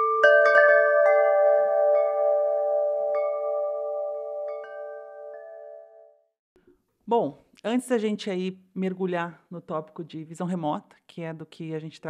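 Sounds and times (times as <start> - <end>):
chimes ringing: 0.0 - 6.2.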